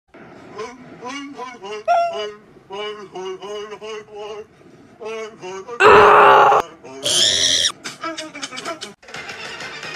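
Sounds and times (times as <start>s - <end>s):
harsh distorted scream: 5.8s - 7.7s.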